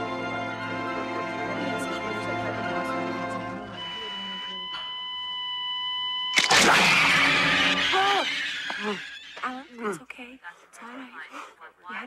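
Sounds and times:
high electronic monitor tone: 3.6s - 9.5s.

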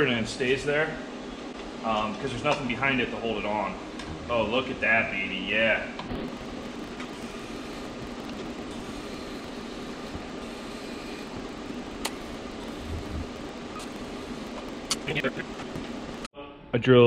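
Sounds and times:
welding arc hissing: 6.2s - 16.3s.

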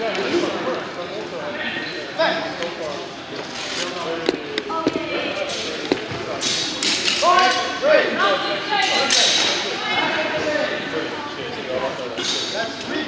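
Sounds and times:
voices in echoing hall: 0.0s - 13.0s.

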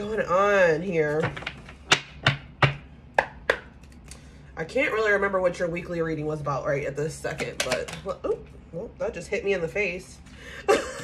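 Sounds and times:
cards tapping on wooden desk: 1.2s - 3.7s.

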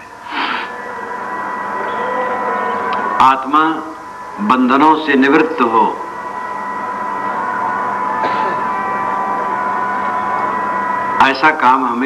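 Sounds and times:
steady hiss: 0.0s - 1.8s
thin high whine: 0.0s - 12.0s.

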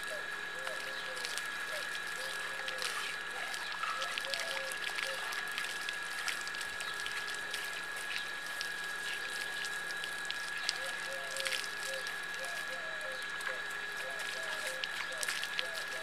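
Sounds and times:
hose water splashing on hide: 0.0s - 16.0s.

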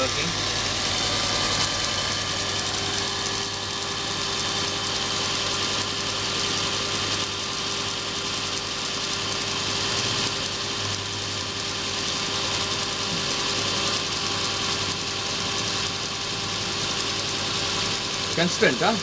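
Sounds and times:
electric grinder motor humming: 0.0s - 19.0s.

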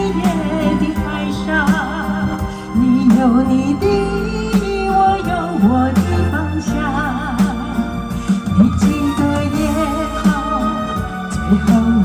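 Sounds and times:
live band playing slow song: 0.0s - 12.0s.

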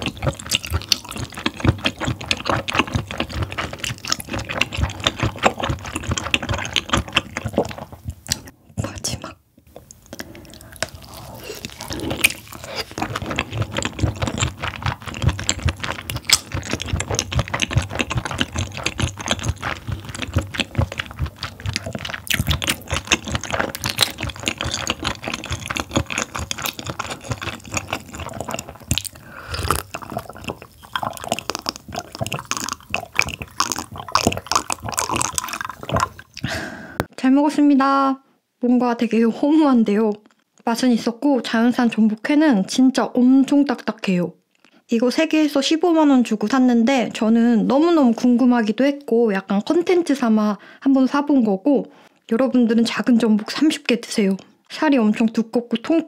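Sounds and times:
wet chewing: 0.0s - 37.1s.

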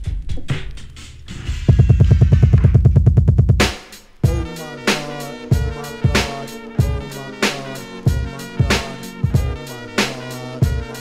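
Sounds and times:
drum hits: 1.4s - 11.0s
fast bass roll: 4.2s - 11.0s.

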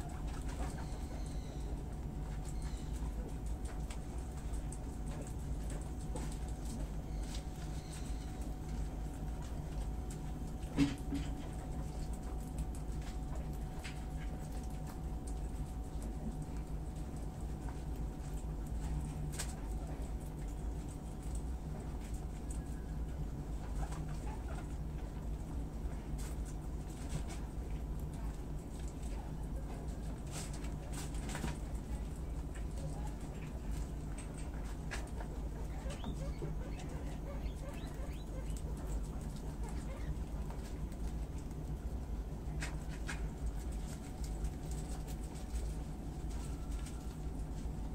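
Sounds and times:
animals munching leafy greens: 0.0s - 47.9s
steady low hum: 0.0s - 47.9s.

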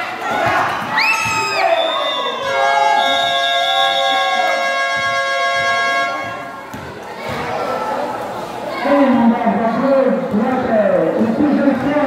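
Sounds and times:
spectators shouting and cheering: 0.0s - 10.2s
horn or buzzer tone: 3.5s - 6.5s.

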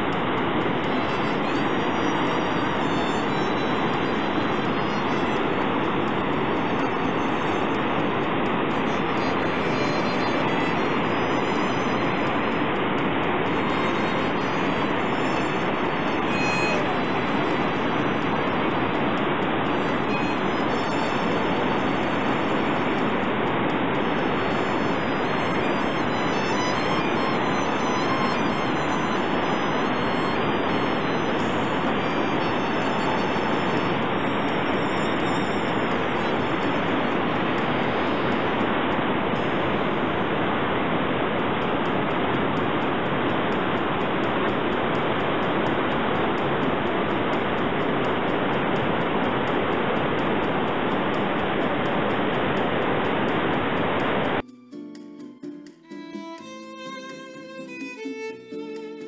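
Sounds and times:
waterfall roaring: 0.0s - 54.4s.

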